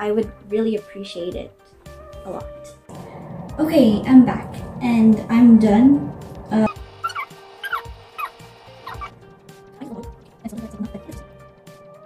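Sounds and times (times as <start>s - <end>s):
light background music: 0.0s - 12.0s.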